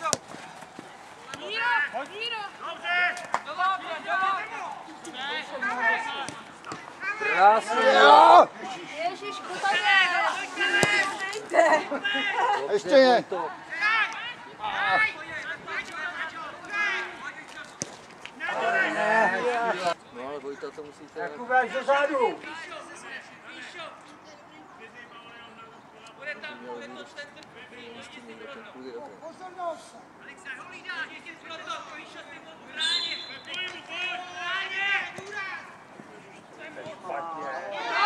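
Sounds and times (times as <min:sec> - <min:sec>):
football being kicked: 0:00.0 - 0:01.4
men shouting calls: 0:01.4 - 0:06.4, 0:07.0 - 0:08.6, 0:09.7 - 0:17.5, 0:18.4 - 0:20.0, 0:30.6 - 0:38.0.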